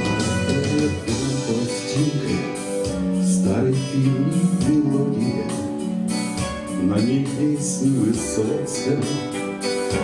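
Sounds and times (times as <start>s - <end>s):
bass line: 0.0s - 10.0s
guitar playing steady chords: 0.0s - 10.0s.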